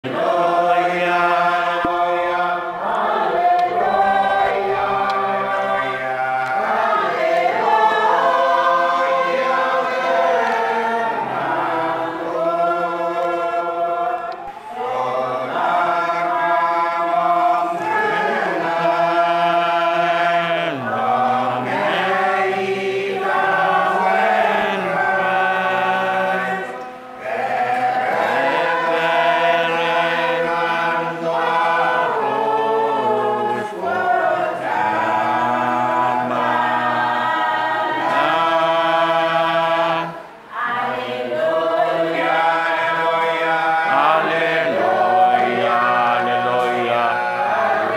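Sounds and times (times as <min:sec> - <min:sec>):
congregation singing a hymn: 0:00.0 - 0:47.9.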